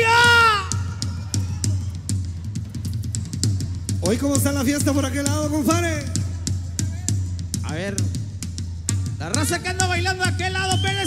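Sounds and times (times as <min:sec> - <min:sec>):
bass line: 0:00.0 - 0:11.0
drum kit beat: 0:00.0 - 0:11.0.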